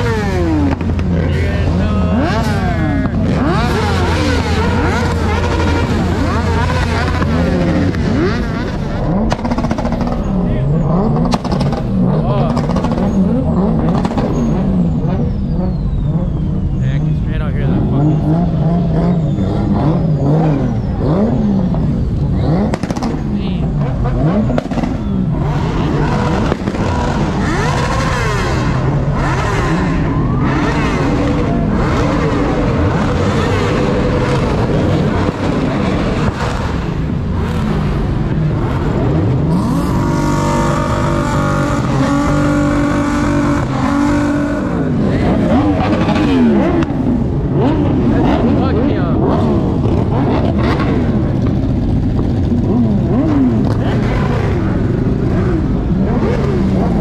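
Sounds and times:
car engines revving past: 0.0 - 57.0
crowd voices: 0.0 - 57.0
motorcycles: 0.0 - 57.0.

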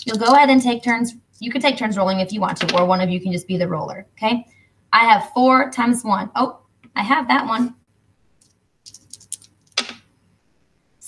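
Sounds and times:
dice rolling on paper: 0.0 - 1.0, 8.9 - 10.0.

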